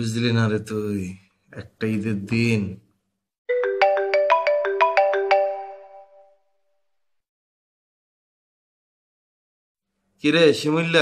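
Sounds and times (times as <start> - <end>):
phone ringtone melody: 3.5 - 6.5.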